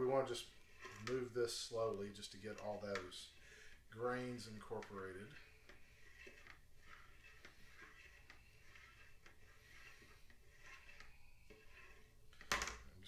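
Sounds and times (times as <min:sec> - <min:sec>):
plastic spoon stirring in bucket: 0:00.0 - 0:13.0.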